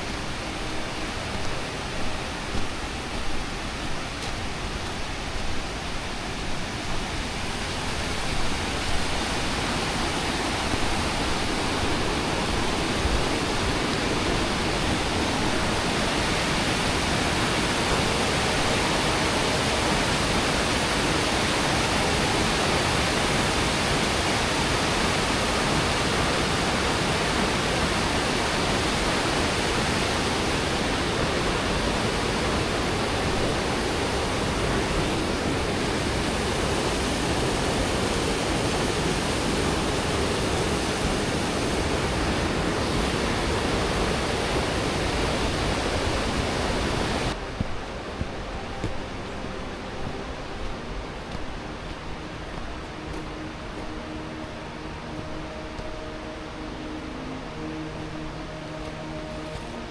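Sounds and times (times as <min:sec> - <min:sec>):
stream rushing over boulders: 0:00.0 - 0:59.9.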